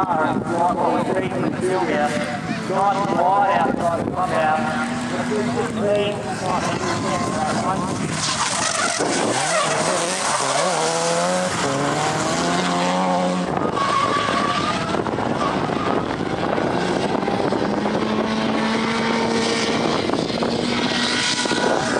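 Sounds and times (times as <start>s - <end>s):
car engine revving hard: 4.3s - 21.9s
tyre squeal: 8.2s - 12.2s, 12.9s - 16.1s.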